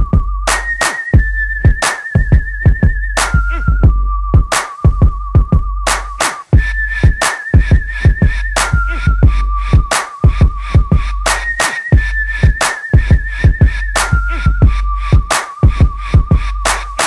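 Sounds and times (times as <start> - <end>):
hip hop instrumental beat: 0.0 - 17.0.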